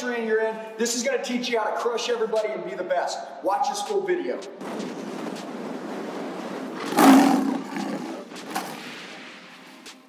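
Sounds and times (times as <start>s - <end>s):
steady rushing noise: 4.5s - 10.0s
lion roaring: 6.8s - 8.3s.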